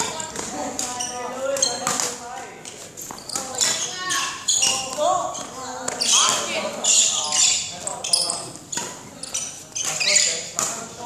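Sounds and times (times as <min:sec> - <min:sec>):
background voices talking: 0:00.0 - 0:11.0
shoes squeaking on hall floor: 0:00.0 - 0:11.0.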